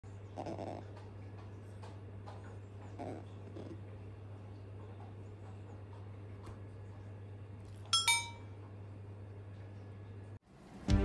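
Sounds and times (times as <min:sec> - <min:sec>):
otter sniffing and snorting: 0:00.3 - 0:01.0, 0:02.9 - 0:03.8.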